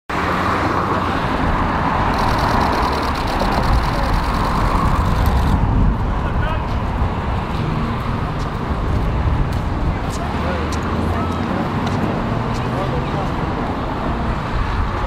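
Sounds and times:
street traffic rumble: 0.1 - 15.0
rapid even ticking: 2.1 - 5.6.

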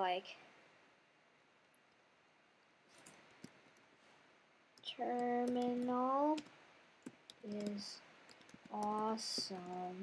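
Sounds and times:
faint keyboard typing: 1.6 - 4.1, 4.7 - 10.0.

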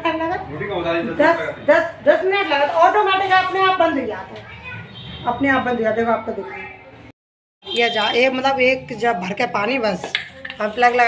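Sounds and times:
woman talking: 7.8 - 11.0.

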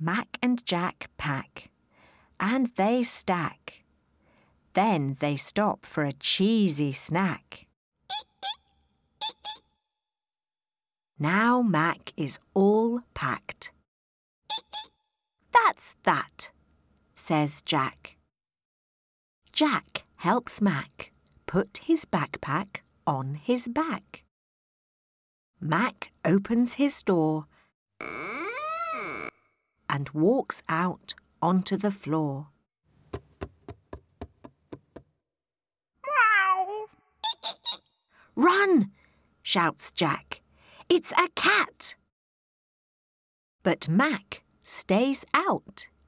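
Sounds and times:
cartoon mouse squeaks: 8.1 - 9.7, 14.5 - 15.0, 28.0 - 29.4, 36.1 - 37.9
door creaking: 28.0 - 29.5.

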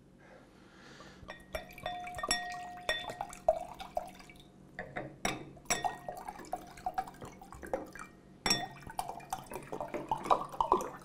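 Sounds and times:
drip-like plinks: 1.3 - 4.9.

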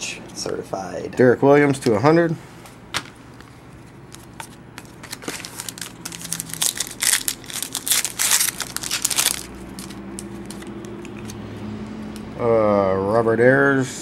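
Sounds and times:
foil wrapper tearing and crinkling: 4.2 - 11.4.

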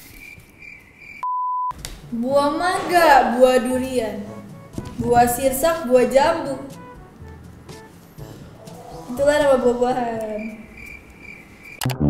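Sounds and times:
censor bleep: 1.2 - 1.8.

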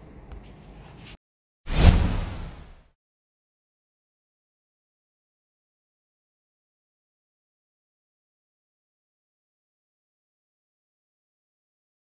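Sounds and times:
whoosh: 1.7 - 2.9.

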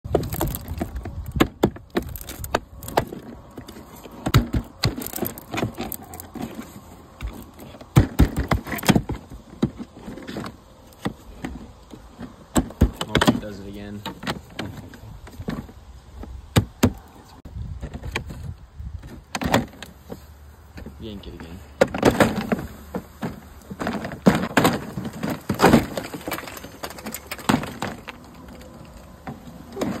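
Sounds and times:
siding trim being pried off: 0.0 - 17.2, 21.8 - 30.0
plastic siding clicks and snaps: 0.1 - 6.6.

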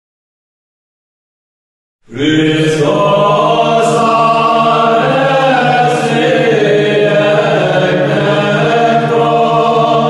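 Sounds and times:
voices singing slow chant: 2.1 - 10.0.

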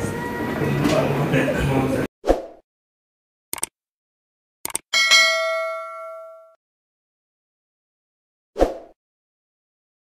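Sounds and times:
metallic notification ding: 5.0 - 6.6.

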